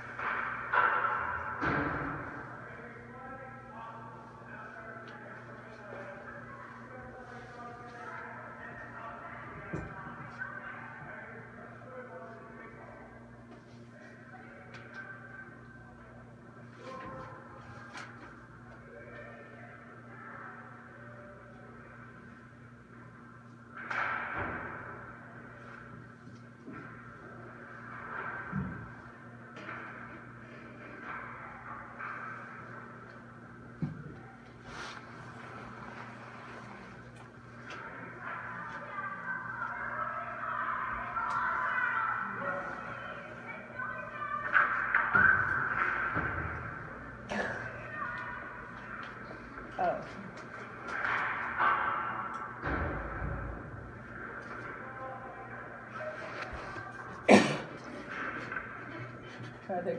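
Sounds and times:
indistinct voices: 0.0 - 59.9
steady low hum: 0.0 - 59.9.

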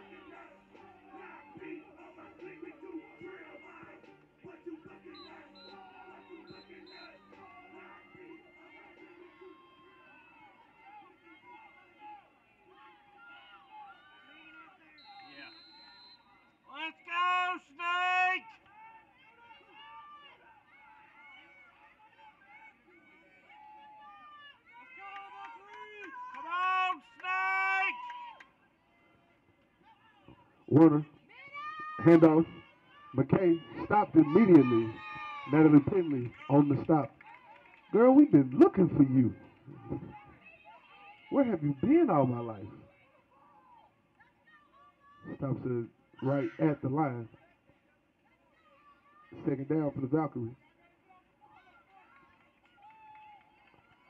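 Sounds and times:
music playing: 0.0 - 12.2, 31.8 - 37.1
faint voices: 0.0 - 54.0.

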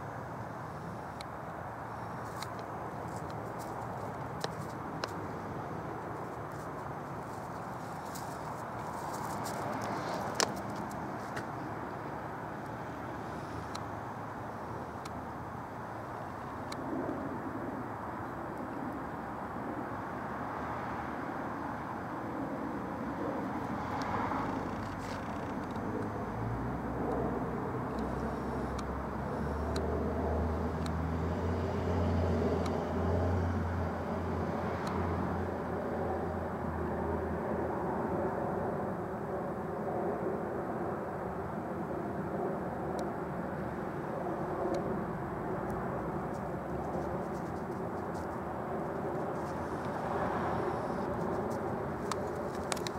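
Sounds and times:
distant airplane engines droning: 0.0 - 52.9.

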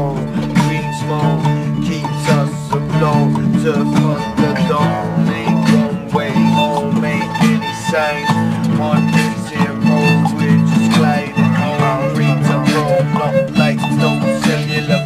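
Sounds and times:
acoustic guitars strumming: 0.0 - 15.0
violin melody: 0.0 - 15.0.

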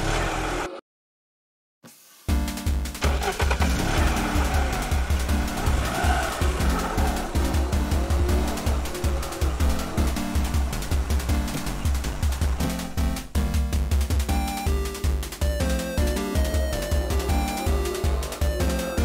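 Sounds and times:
car engine revving: 0.0 - 0.8, 3.0 - 13.0, 16.2 - 19.0
music with driving beat: 2.3 - 19.0.

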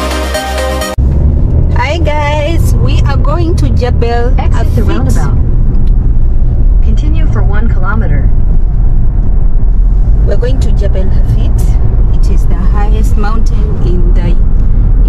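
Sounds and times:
road and engine rumble: 0.0 - 15.0
person speaking: 4.3 - 5.4.

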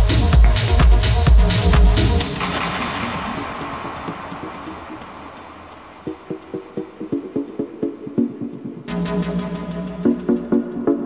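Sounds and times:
wash of synth sound: 2.2 - 7.1.

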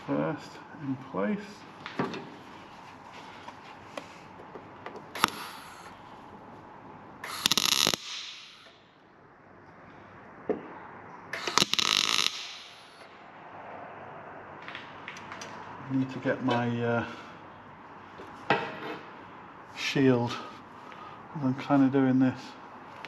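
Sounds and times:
welder tack welding bursts: 5.2 - 5.9, 7.2 - 8.8, 11.4 - 13.0.

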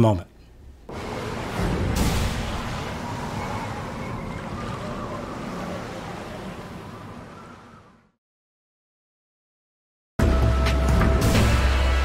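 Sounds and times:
ocean surf: 0.9 - 8.2.

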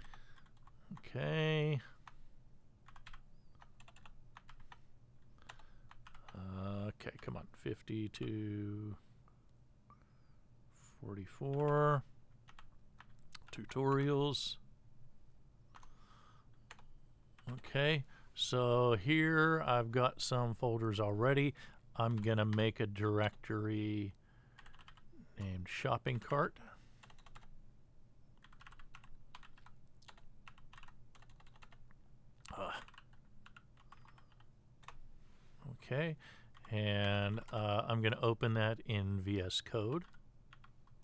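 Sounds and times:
computer keyboard typing: 0.0 - 1.1, 2.8 - 4.8, 5.4 - 6.4, 11.5 - 11.8, 12.4 - 14.1, 15.7 - 15.9, 16.7 - 17.7, 24.6 - 25.0, 27.0 - 27.5, 28.4 - 31.8, 32.5 - 35.0, 39.9 - 41.0.

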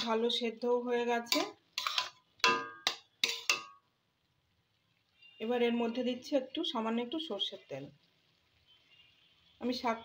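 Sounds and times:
metal spatula clanking on pan: 0.0 - 0.2, 1.2 - 3.9.

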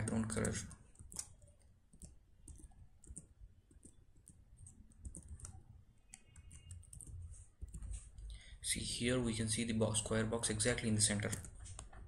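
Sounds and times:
faint keyboard typing: 0.0 - 8.6, 10.0 - 12.0.

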